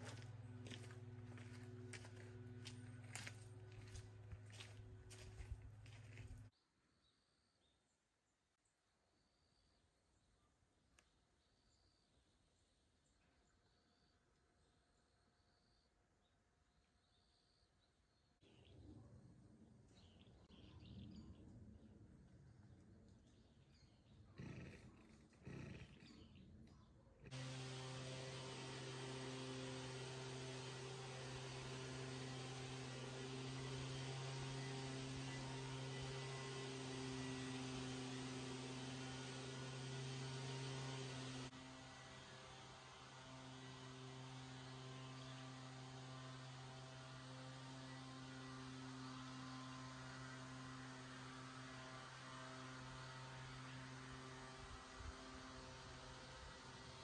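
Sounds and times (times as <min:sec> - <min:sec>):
low mechanical hum: 0:00.0 - 0:06.5, 0:18.2 - 0:57.0.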